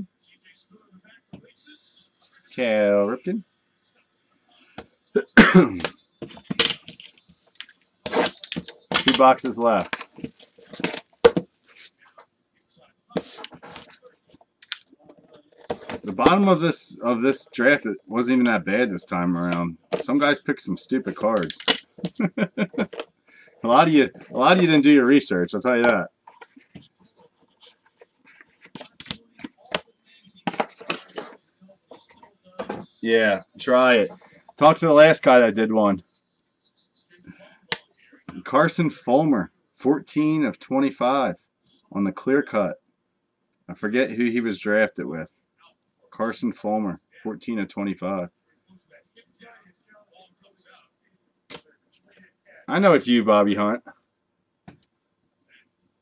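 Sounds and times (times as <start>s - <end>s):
plastic wrap and cardboard tearing: 9.8s - 12.0s
faint handling noise: 25.8s - 33.0s.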